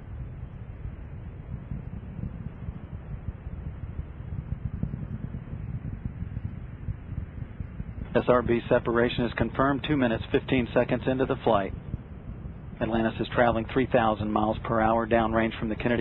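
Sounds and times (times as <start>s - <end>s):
rocket engines rumbling: 0.0s - 16.0s.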